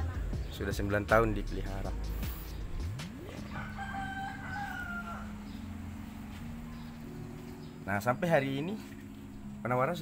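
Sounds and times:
rooster crowing: 3.4s - 6.3s.

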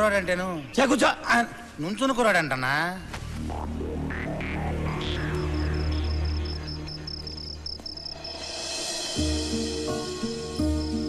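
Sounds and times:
steady low drone: 3.3s - 7.5s
crickets chirping: 4.4s - 11.0s.

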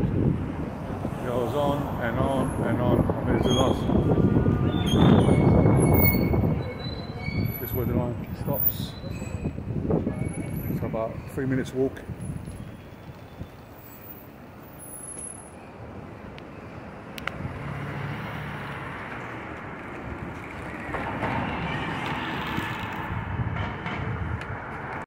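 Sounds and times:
passing vehicles: 0.0s - 25.0s.

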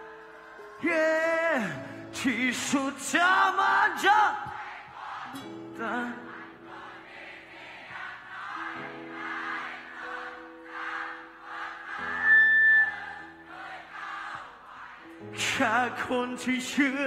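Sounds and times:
concert crowd singing along: 0.2s - 17.0s
high whistle-like tone: 12.1s - 13.3s.

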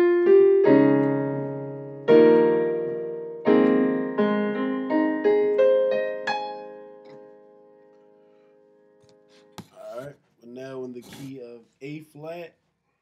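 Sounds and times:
digital piano chords: 0.0s - 9.8s.

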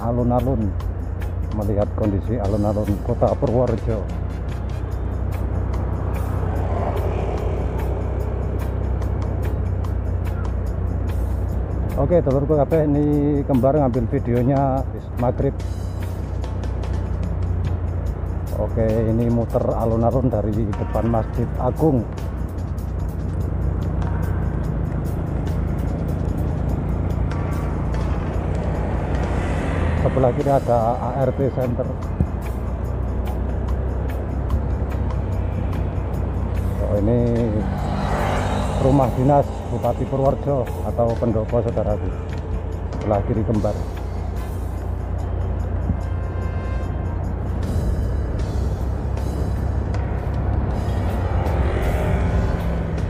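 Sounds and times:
background music: 0.0s - 53.0s
motorcycle engine: 4.1s - 12.0s, 22.0s - 53.0s
rushing air: 24.7s - 31.4s, 37.4s - 43.0s.

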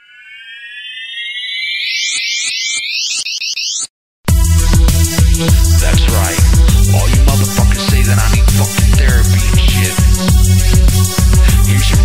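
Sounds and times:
electronic siren-like tone: 0.0s - 3.9s.

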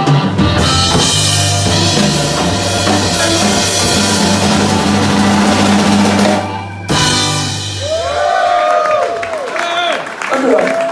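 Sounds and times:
blues band final chord: 0.0s - 8.1s.

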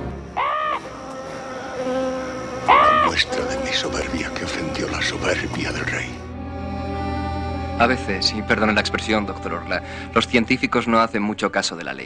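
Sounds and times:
wavering buzz: 0.0s - 10.9s.

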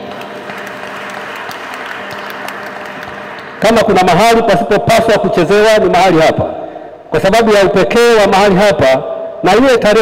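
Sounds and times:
congregation applauding: 0.0s - 4.4s.

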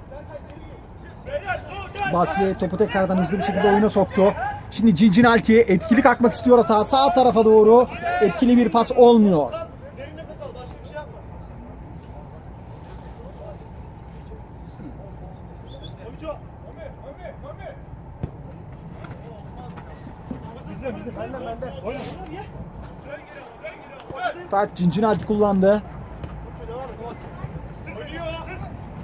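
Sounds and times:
players shouting: 0.4s - 10.9s, 18.8s - 29.0s.

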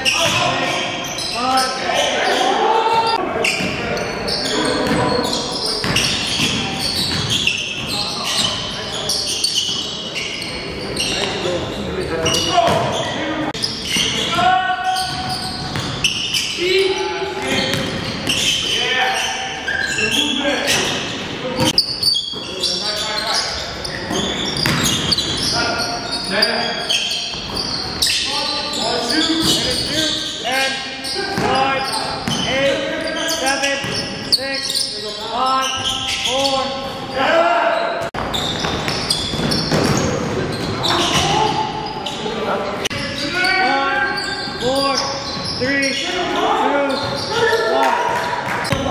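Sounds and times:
players' voices echoing: 0.0s - 48.9s.

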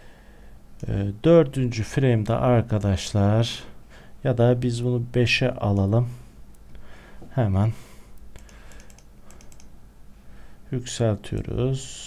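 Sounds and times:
faint steady hum: 0.0s - 12.0s
mouse and keyboard clicks: 8.4s - 9.7s.

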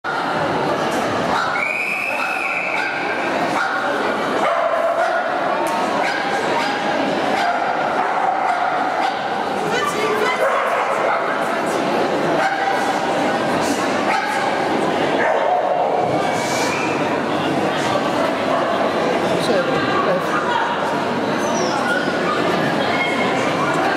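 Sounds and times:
spectators chattering: 0.0s - 23.9s.

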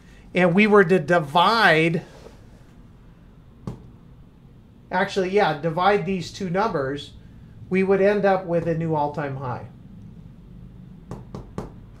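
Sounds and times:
light taps on a whiteboard: 3.6s - 3.9s.

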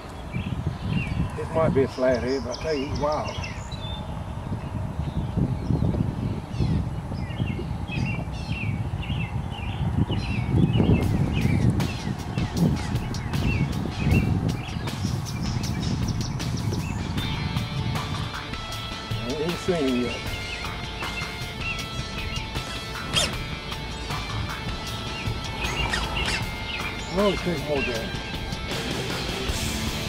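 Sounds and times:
birds chirping: 0.0s - 30.0s
wind rumbling: 0.0s - 30.0s.

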